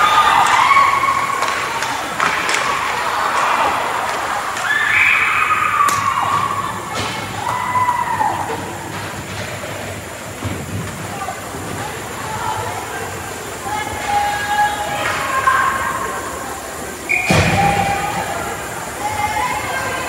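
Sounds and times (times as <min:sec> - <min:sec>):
hockey sticks and puck clacking: 0:00.0 - 0:12.7
players and spectators shouting: 0:00.0 - 0:20.0.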